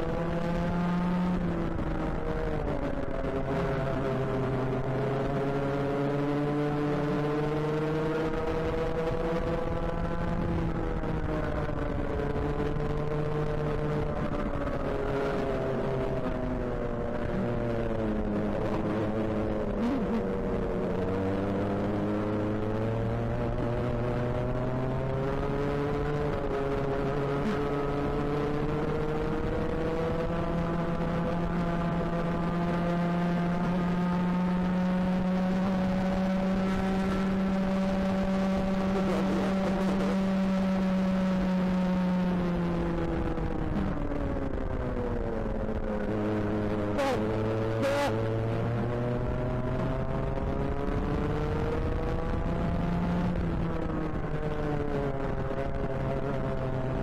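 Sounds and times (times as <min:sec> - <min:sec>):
racing kart engine at speed: 0:00.0 - 0:57.0.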